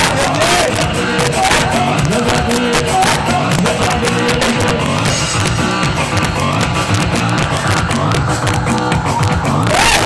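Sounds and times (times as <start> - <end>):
band playing loudly: 0.0 - 10.0.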